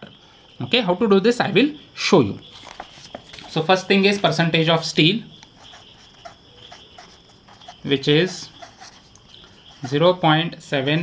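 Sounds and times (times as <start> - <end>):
pen scratching on paper: 2.6 - 11.0.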